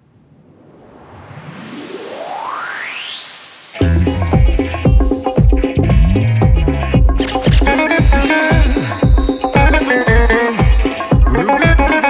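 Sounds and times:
synthesizer riser: 0.4 - 11.5.

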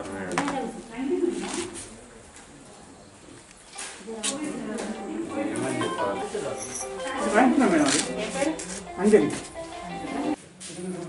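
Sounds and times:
person speaking: 4.5 - 10.4.

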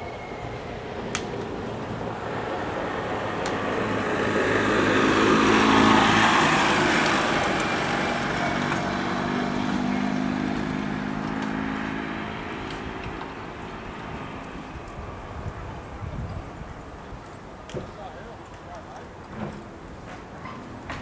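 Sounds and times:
vehicle engine passing by: 0.4 - 16.8.

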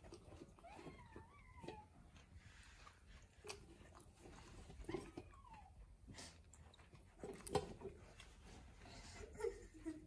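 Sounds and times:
puppy whining: 0.0 - 2.8, 3.4 - 8.0.

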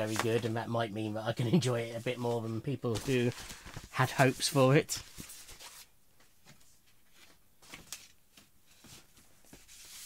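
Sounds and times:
record sleeves rustling: 0.0 - 0.6, 1.6 - 10.0.

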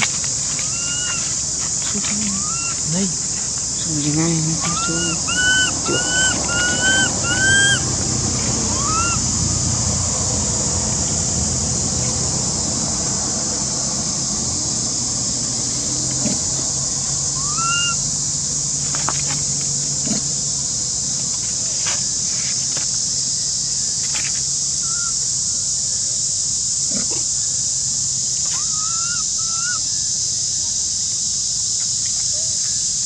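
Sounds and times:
baby monkey crying: 0.6 - 1.4, 2.2 - 3.0, 4.6 - 9.3, 17.4 - 18.1, 28.6 - 29.8.

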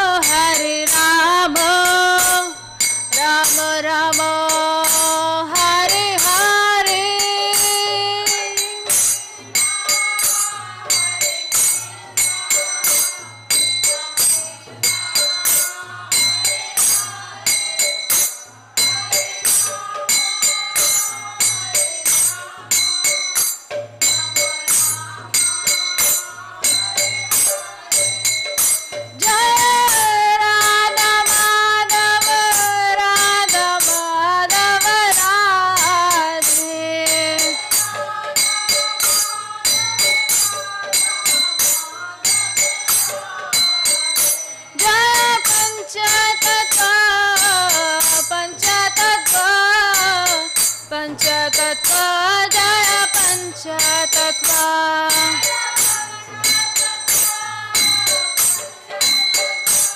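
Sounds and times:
woman singing: 0.0 - 18.0, 29.1 - 58.9
hand cymbals ringing: 0.0 - 59.9.

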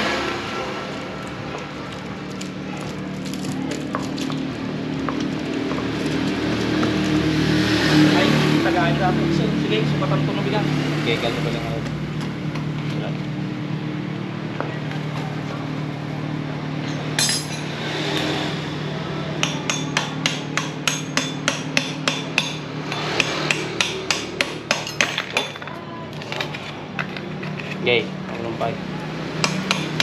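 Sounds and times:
sharp hammering knocks: 19.4 - 25.6.

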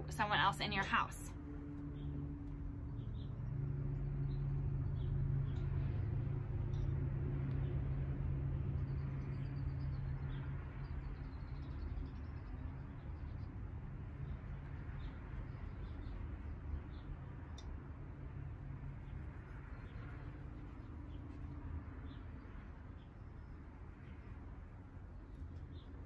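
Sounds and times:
low mechanical hum: 0.0 - 26.0
small birds chirping: 14.2 - 17.2.

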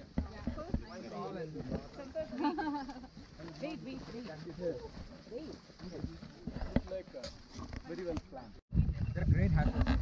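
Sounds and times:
footsteps on dirt trail: 0.0 - 8.5.

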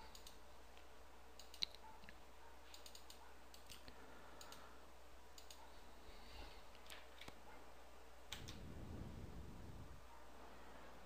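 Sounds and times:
faint computer clicks: 0.0 - 4.7, 5.3 - 5.7, 8.3 - 8.6.

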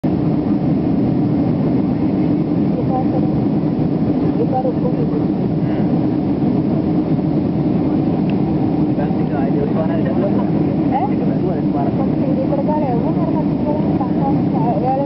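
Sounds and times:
airliner cabin engine drone: 0.0 - 15.0
faint voices murmuring: 4.1 - 6.8, 8.8 - 15.0.

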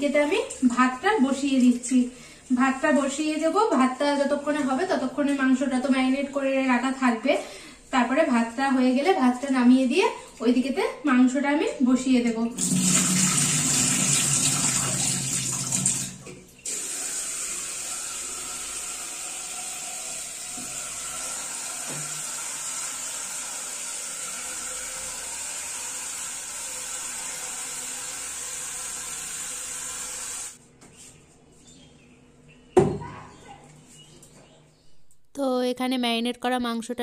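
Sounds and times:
tap water running into steel bowl: 12.6 - 30.5.

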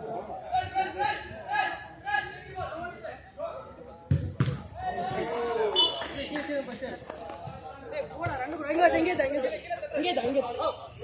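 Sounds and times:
players' voices: 0.0 - 11.0
football being kicked: 4.1 - 4.7.

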